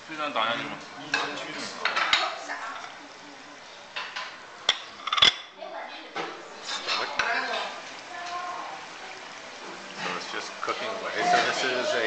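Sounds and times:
table chatter: 0.4s - 12.0s
plates and bowls clinking: 1.0s - 3.0s, 3.9s - 5.6s, 6.2s - 7.6s.

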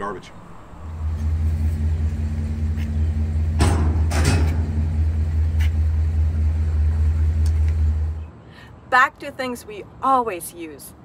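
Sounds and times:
steady low hum: 0.0s - 8.5s
metal clanking in dumpster: 3.4s - 5.3s.

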